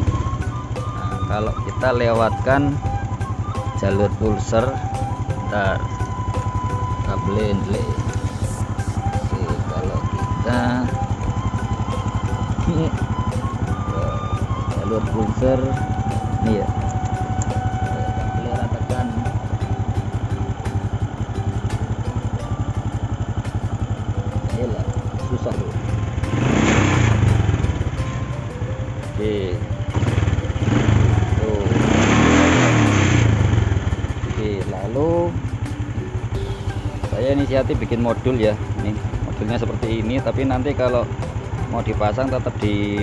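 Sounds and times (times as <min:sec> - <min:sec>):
engine revving: 0:00.0 - 0:43.0
motorcycle engine idling: 0:00.0 - 0:43.0.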